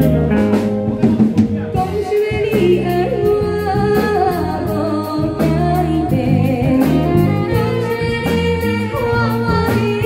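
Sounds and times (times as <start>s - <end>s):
live band playing: 0.0s - 10.0s
woman singing into microphone: 1.8s - 10.0s.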